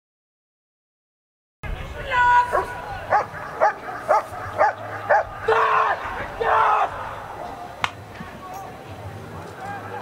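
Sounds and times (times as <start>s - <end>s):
dog barking: 2.5s - 5.4s.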